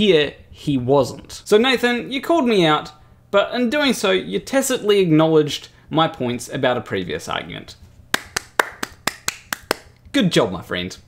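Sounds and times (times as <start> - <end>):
person clapping hands: 8.1 - 10.0.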